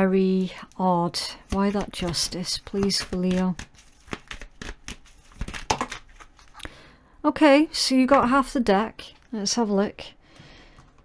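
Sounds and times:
cards being shuffled: 0:01.3 - 0:06.6.

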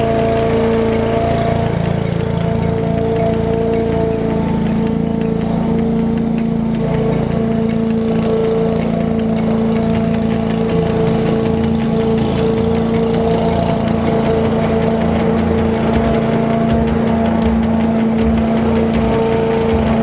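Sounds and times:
lawn mower engine running: 0:00.0 - 0:20.0.

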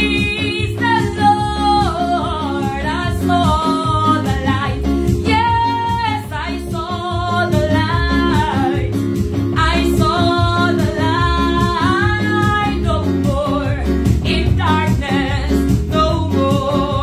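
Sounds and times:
woman singing gospel: 0:00.0 - 0:09.0, 0:09.6 - 0:17.0
bass: 0:00.0 - 0:17.0
electronic keyboard chords: 0:00.0 - 0:17.0.

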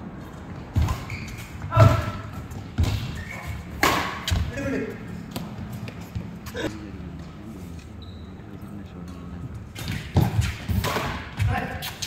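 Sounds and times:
rackets striking shuttlecock: 0:00.8 - 0:04.5, 0:09.8 - 0:11.5.

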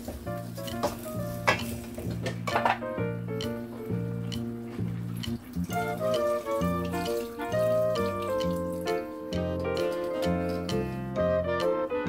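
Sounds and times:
background music: 0:00.0 - 0:12.0
ladle scraping and knocking pot: 0:00.6 - 0:02.8.

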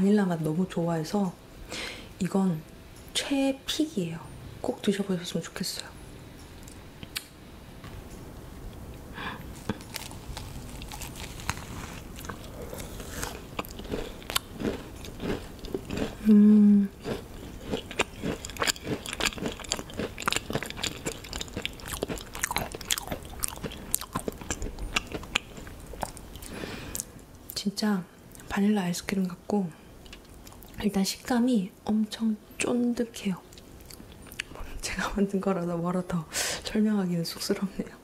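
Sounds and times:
biting and chewing macaron: 0:09.5 - 0:16.3, 0:16.9 - 0:27.1
person humming: 0:16.2 - 0:17.0.

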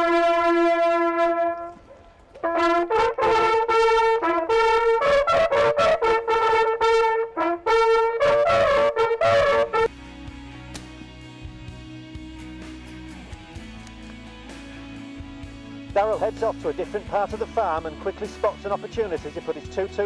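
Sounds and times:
brass hunting horns fanfare: 0:00.0 - 0:01.8, 0:02.4 - 0:10.0.

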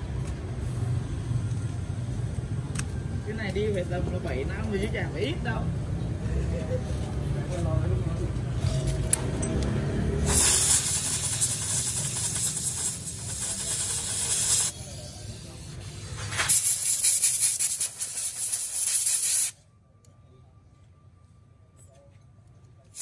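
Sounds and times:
pressurised spray hissing: 0:10.2 - 0:19.6.

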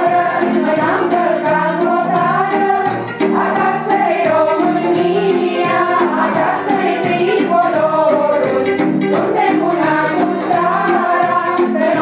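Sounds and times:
group of voices singing: 0:00.0 - 0:12.0
instrumental accompaniment: 0:00.0 - 0:12.0.

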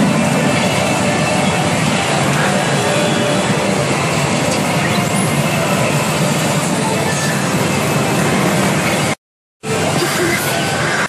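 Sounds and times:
roar of pachinko machines: 0:00.0 - 0:11.0.

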